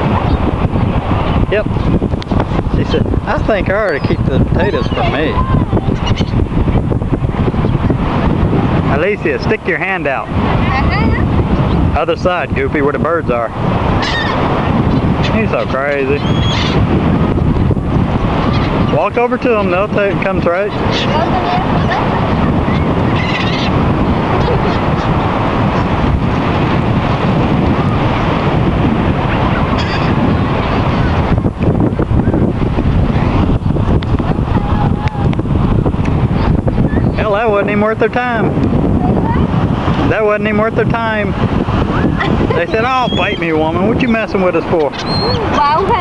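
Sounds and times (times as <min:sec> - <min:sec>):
gulls calling: 0:00.0 - 0:12.0, 0:13.5 - 0:32.4, 0:33.0 - 0:46.0
wind noise on microphone: 0:00.0 - 0:46.0
seagull calls: 0:03.8 - 0:06.4, 0:14.0 - 0:15.3, 0:16.2 - 0:16.8, 0:20.7 - 0:23.8, 0:29.5 - 0:31.1, 0:41.9 - 0:43.6, 0:44.9 - 0:46.0.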